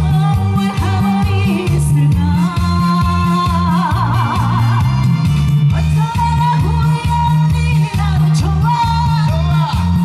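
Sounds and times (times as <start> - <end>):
accompaniment with steady bass: 0.0 - 10.0.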